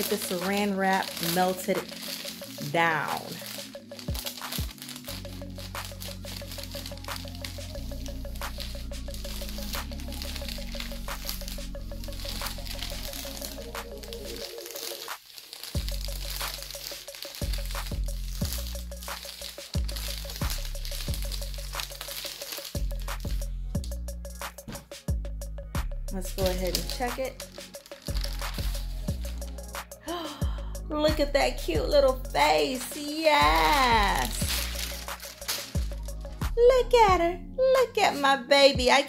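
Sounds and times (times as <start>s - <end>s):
music with deep bass line: 0.0s - 14.6s, 15.8s - 37.9s.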